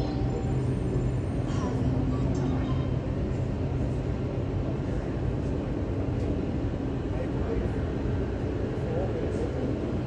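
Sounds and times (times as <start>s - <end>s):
jet engines roaring: 0.0s - 10.0s.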